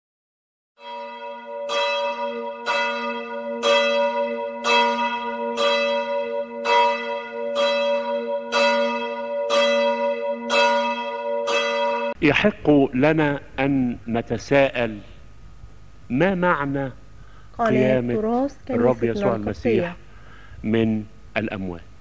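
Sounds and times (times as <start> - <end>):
church bell tolling: 0.8 - 12.2.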